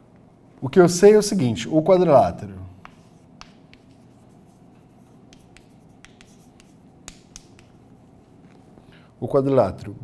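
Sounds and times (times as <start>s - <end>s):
chalk tapping and scratching on chalkboard: 2.8s - 8.8s.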